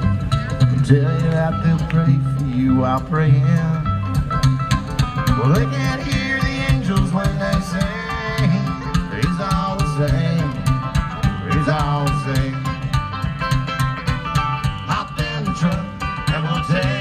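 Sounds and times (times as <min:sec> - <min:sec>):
fast bluegrass music: 0:00.0 - 0:17.0
guitar: 0:00.0 - 0:17.0
plucked banjo: 0:00.0 - 0:17.0
pulsing bass line: 0:00.0 - 0:17.0.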